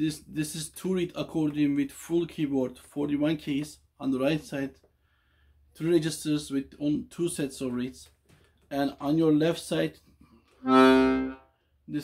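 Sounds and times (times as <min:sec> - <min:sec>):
accordion bass note: 0:10.6 - 0:11.5.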